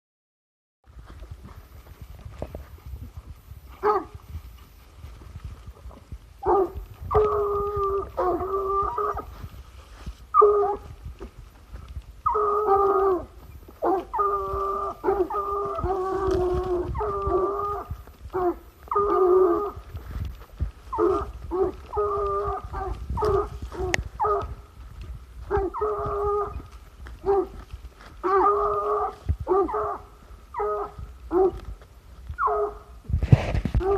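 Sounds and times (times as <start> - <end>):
hounds baying: 1.5 - 4.7, 5.9 - 24.8, 25.4 - 31.7, 32.4 - 33.0.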